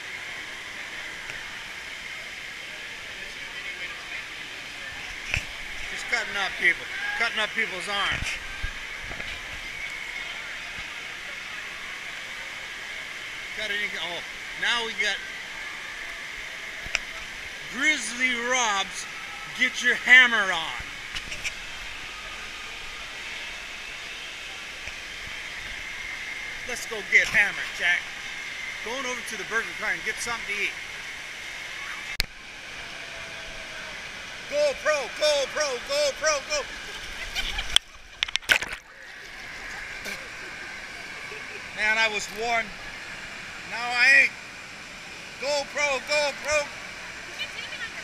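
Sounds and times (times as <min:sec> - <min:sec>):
distant crowd voices: 0:00.0 - 0:48.0
rushing water: 0:00.0 - 0:48.0.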